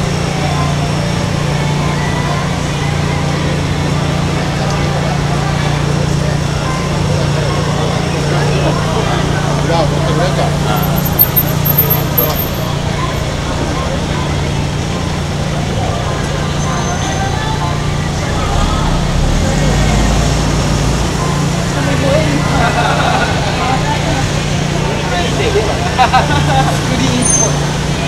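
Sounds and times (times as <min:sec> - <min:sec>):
street crowd chatter: 0:00.0 - 0:28.0.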